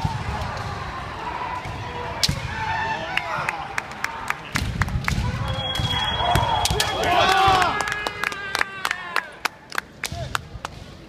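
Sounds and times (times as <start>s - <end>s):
people shouting: 0.0s - 4.2s, 5.2s - 9.3s
echoing hall noise: 0.0s - 11.0s.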